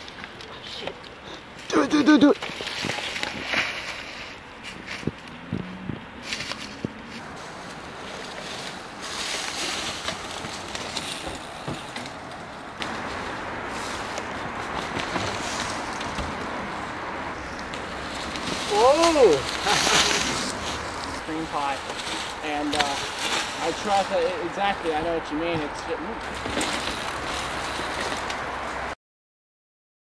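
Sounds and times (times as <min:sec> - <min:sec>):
bike tyres rolling over dry leaves: 0:00.0 - 0:28.9
bike knocking: 0:09.4 - 0:16.9.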